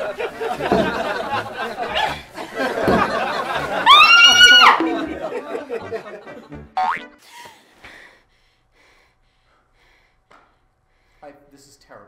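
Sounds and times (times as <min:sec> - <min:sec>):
film soundtrack music: 0:05.8 - 0:07.2.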